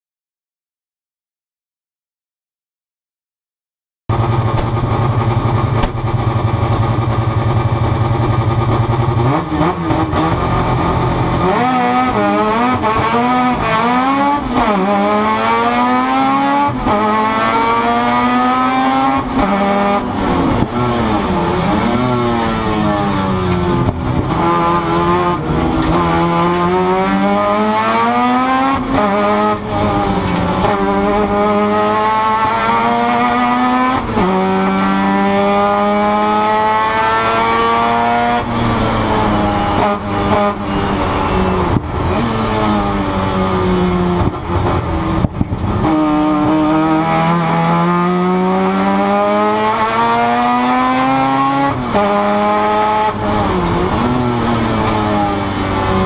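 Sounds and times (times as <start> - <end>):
race car engine revving: 4.1 - 56.0.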